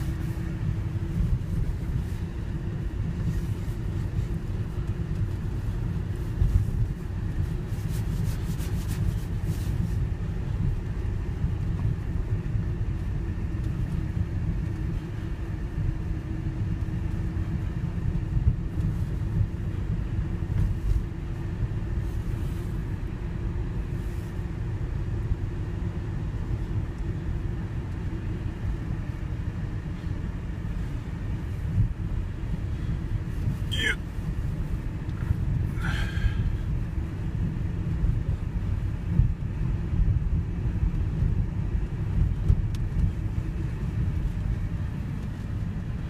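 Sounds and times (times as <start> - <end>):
faint steady hum: 0.0 - 46.0
van engine and road rumble: 0.0 - 46.0.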